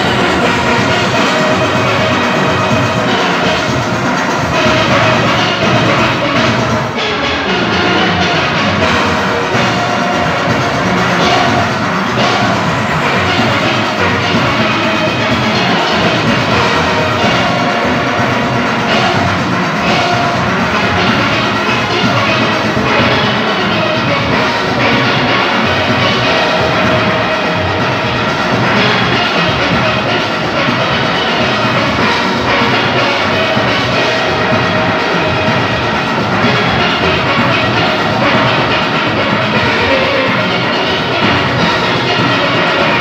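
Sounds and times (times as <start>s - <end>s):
steel orchestra playing: 0.0s - 43.0s.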